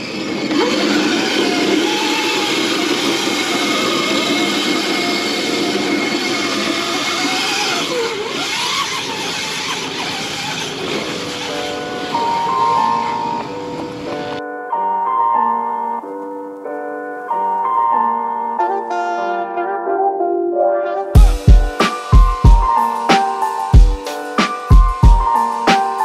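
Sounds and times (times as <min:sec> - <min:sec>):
kart wheels scrubbing on asphalt: 0:00.0 - 0:14.4
piano music: 0:10.7 - 0:26.0.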